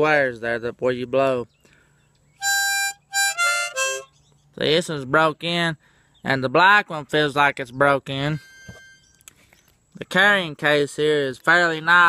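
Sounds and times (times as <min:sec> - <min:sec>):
harmonica phrase: 0:02.4 - 0:04.1, 0:08.2 - 0:09.2.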